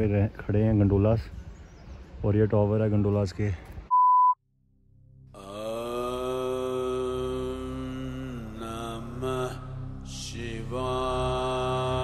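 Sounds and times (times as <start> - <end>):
low steady drone: 4.7 - 12.0
person chanting a mantra: 5.4 - 12.0.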